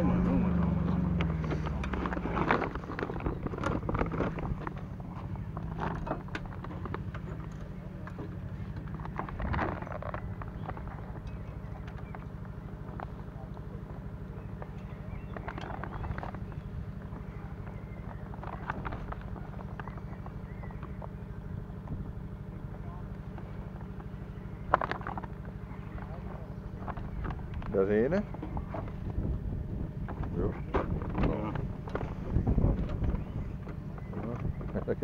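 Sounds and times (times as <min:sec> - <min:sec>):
engine humming: 0:00.0 - 0:35.0.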